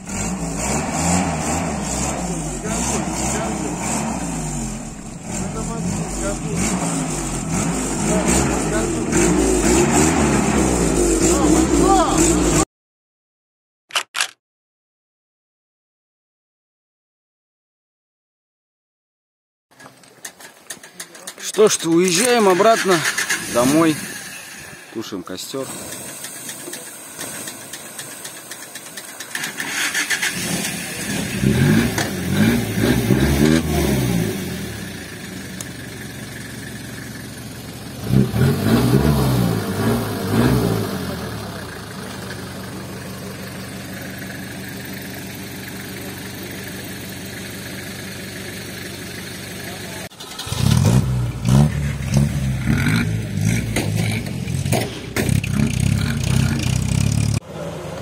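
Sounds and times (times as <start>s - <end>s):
off-road engine revving: 0.0s - 12.7s, 21.1s - 58.0s
water hissing on smouldering log: 25.5s - 30.6s.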